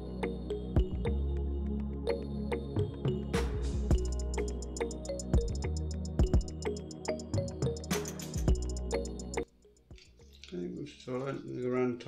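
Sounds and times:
man speaking: 10.4 - 12.0.

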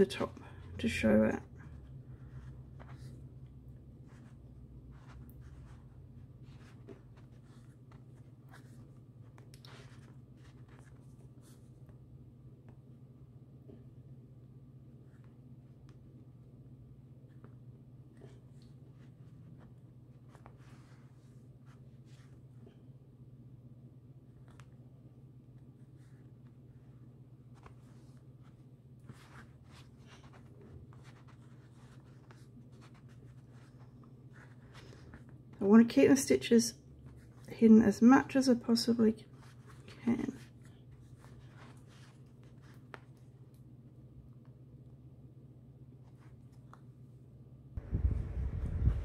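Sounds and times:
steady low hum: 0.0 - 49.0
thread rustling through fabric: 0.2 - 12.0, 25.6 - 36.1.

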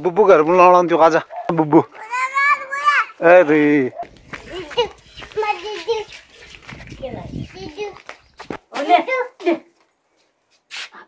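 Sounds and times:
small child calling and babbling: 1.9 - 3.2, 4.4 - 6.3, 6.9 - 8.1
low rumble: 4.0 - 5.5.

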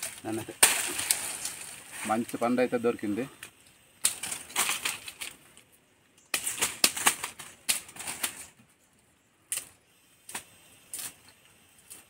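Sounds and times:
stems snapping: 0.0 - 2.4, 3.4 - 8.6, 9.5 - 12.0
pineapple leaves crackling: 0.0 - 8.6, 9.4 - 12.0.

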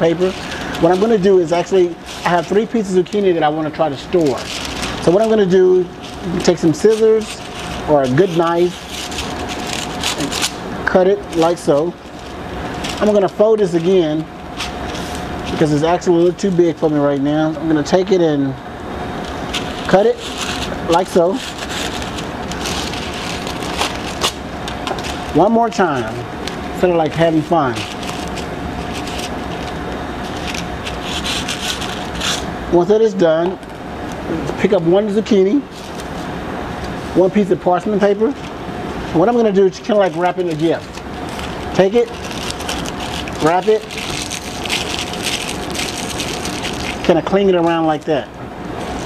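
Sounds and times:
paper rustling and crinkling: 0.0 - 17.9, 19.2 - 32.5, 35.7 - 36.3, 37.2 - 48.1
steady background hum: 0.0 - 49.0.

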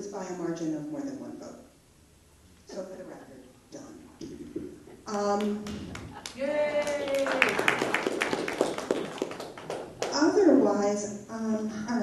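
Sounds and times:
scattered clapping: 5.3 - 10.2.

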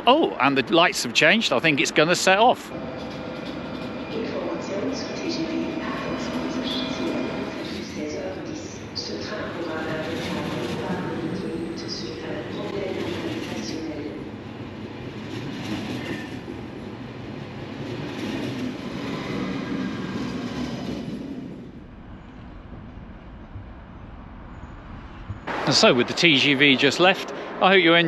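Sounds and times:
train wheels rumbling on rails: 0.0 - 28.0.

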